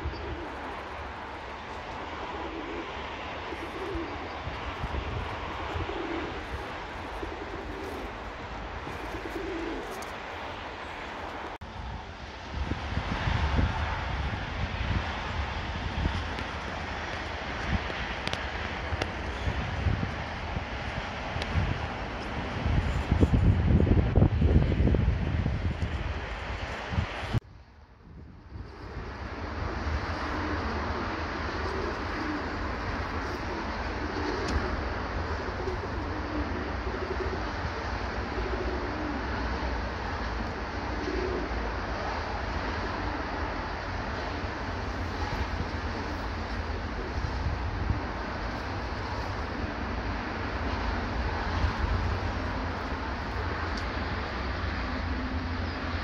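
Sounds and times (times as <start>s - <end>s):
pigeons cooing: 0.0s - 11.4s, 28.6s - 55.9s.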